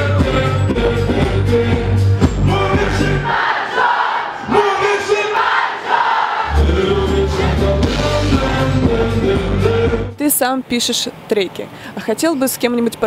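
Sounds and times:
live song with heavy bass: 0:00.0 - 0:03.4, 0:06.4 - 0:10.2
crowd singing: 0:00.0 - 0:10.2.

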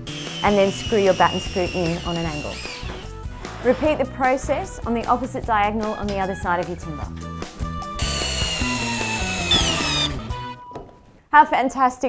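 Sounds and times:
cordless drill boring into timber: 0:00.0 - 0:03.2, 0:08.0 - 0:10.6.

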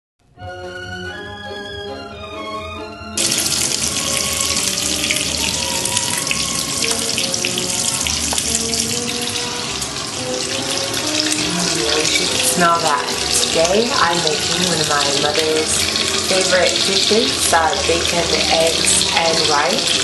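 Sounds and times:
light background music: 0:00.3 - 0:20.0
bacon sizzling in a pan: 0:03.2 - 0:20.0.

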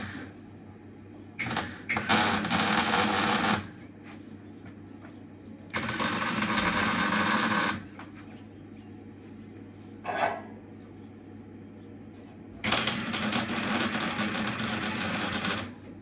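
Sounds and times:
low steady hum: 0:00.0 - 0:16.0
welding crackle: 0:01.4 - 0:03.7, 0:05.8 - 0:07.8, 0:12.6 - 0:15.8.

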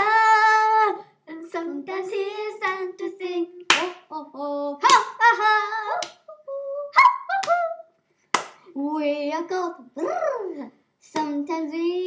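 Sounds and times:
girls singing: 0:00.0 - 0:07.9, 0:08.7 - 0:12.0
hand claps: 0:03.7 - 0:04.0, 0:08.3 - 0:08.6.

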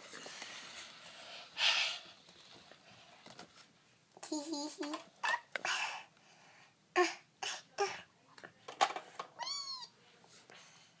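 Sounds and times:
plastic toys knocking: 0:08.7 - 0:09.3.

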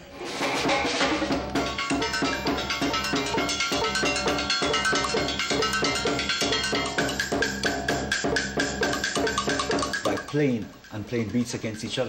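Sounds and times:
fast drum rhythm: 0:00.4 - 0:12.0
ringing metal percussion notes: 0:00.6 - 0:12.0.

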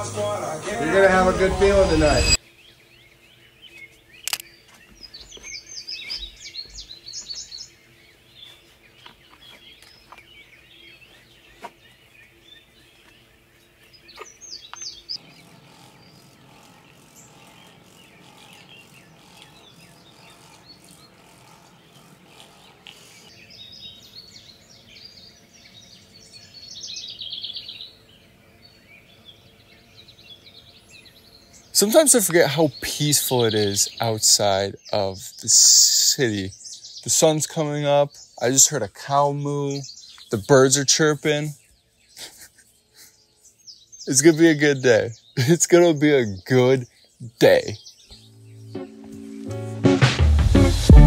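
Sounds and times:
birds chirping: 0:00.0 - 0:51.0.

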